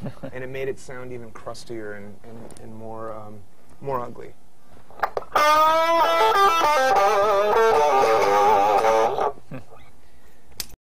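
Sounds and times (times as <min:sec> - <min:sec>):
electric guitar notes with vibrato: 0:05.4 - 0:09.4.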